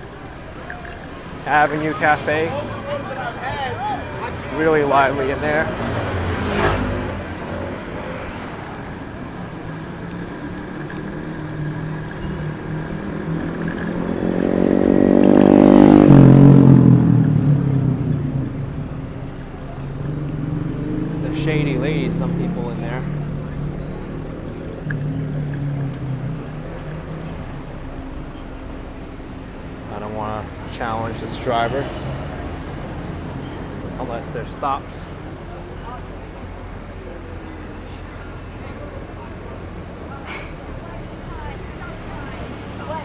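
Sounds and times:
people's voices: 0.0s - 14.3s, 17.3s - 43.0s
city street traffic: 0.0s - 43.0s
vehicle engine passing: 0.0s - 43.0s.

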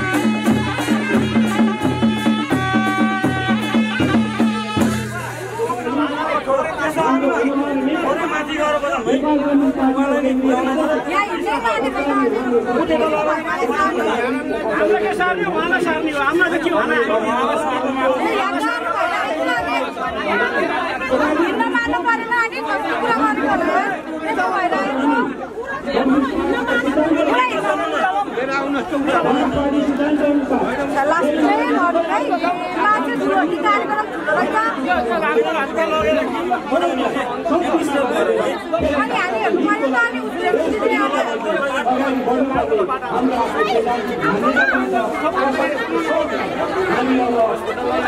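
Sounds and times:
devotional music with drum beats: 0.0s - 6.0s
people talking over one another: 0.0s - 48.0s.

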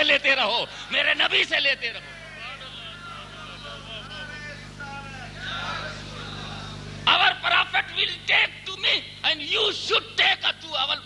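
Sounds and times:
low electrical hum: 0.0s - 11.0s
faint indistinct voices: 2.0s - 7.0s.

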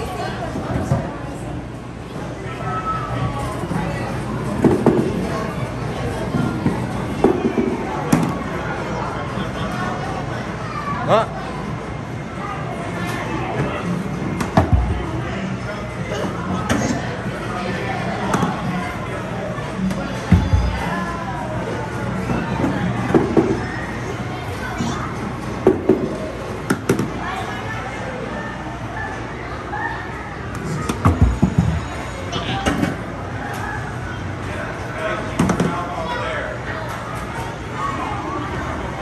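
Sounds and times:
murmur of voices: 0.0s - 39.0s.

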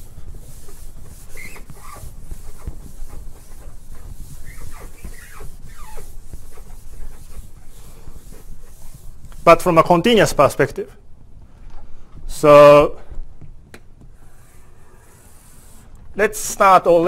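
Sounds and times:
scratching strokes on board: 0.0s - 10.8s, 14.0s - 17.0s.

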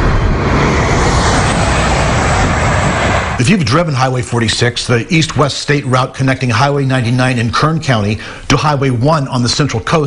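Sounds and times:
highway traffic rushing: 0.0s - 10.0s.

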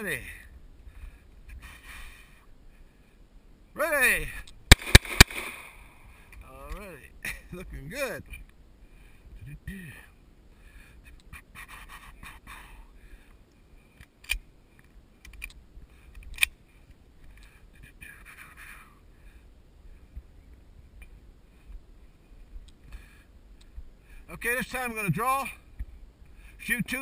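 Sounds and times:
pistol clicks: 4.7s - 5.8s.

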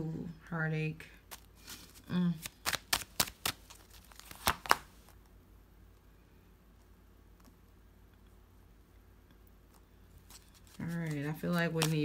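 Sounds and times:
cards being shuffled: 1.2s - 5.2s, 9.7s - 12.0s.

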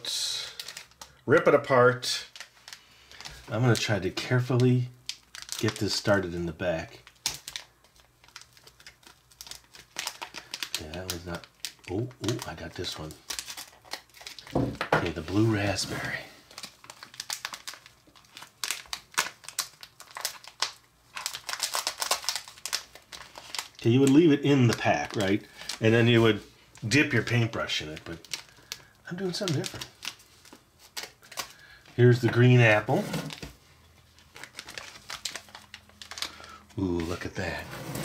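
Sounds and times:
plastic pouch crinkling: 0.1s - 38.0s.

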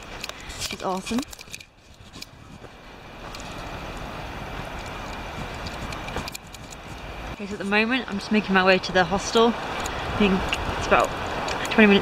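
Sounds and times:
wind rumble on microphone: 0.0s - 12.0s
tyres hissing on wet road: 8.2s - 12.0s.

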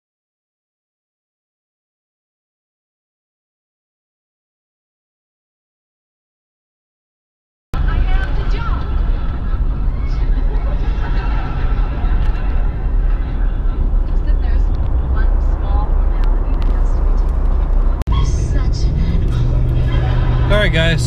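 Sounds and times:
road and engine noise in car cabin: 7.8s - 21.0s.

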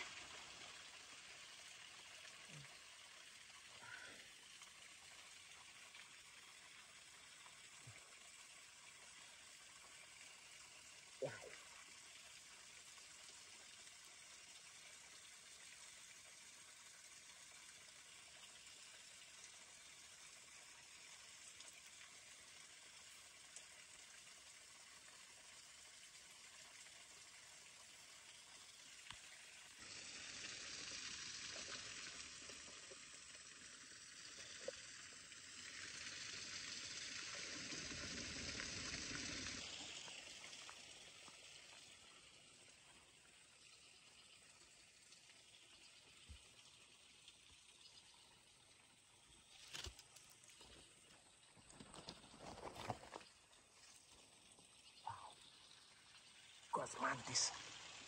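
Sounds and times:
faint steady hiss: 0.0s - 58.0s
louder steady hiss: 29.7s - 40.5s.

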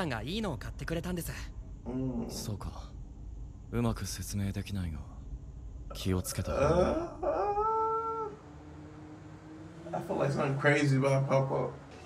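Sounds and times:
faint low hum: 0.0s - 12.0s.

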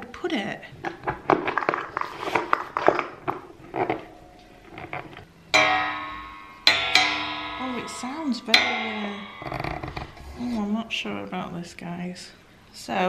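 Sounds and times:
metal spring ringing twangs: 4.1s - 10.7s
metal arm clicks and knocks: 6.6s - 10.4s.

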